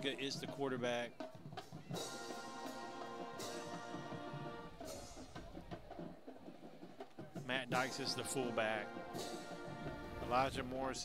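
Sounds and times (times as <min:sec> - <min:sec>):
faint band music: 0:00.0 - 0:11.0.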